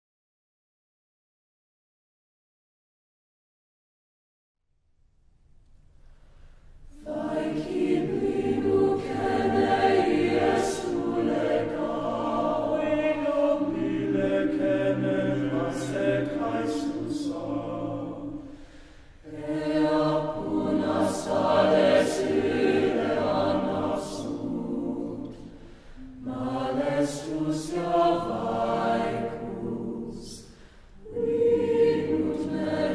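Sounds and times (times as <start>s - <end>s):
choir singing unaccompanied: 6.9s - 32.9s.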